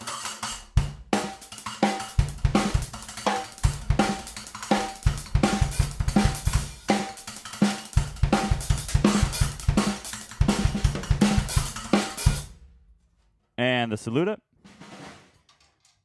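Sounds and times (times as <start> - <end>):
drum kit groove: 0.0 - 12.7.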